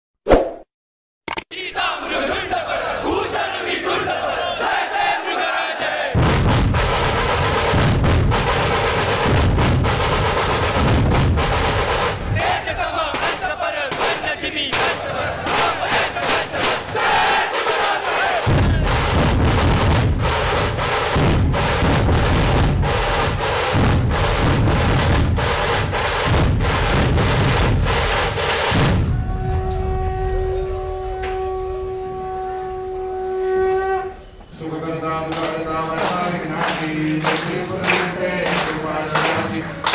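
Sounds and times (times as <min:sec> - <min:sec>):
crowd shouting: 0:01.5 - 0:06.2, 0:12.3 - 0:19.2, 0:29.0 - 0:30.9
drums pounding: 0:04.8 - 0:32.1.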